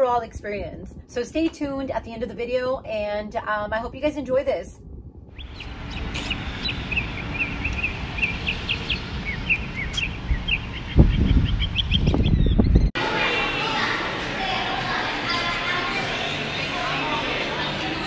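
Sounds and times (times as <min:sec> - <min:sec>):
wind buffeting microphone: 0:00.0 - 0:15.4
steady outdoor hiss: 0:04.0 - 0:12.2, 0:13.0 - 0:18.0
small birds chirping: 0:05.4 - 0:12.9.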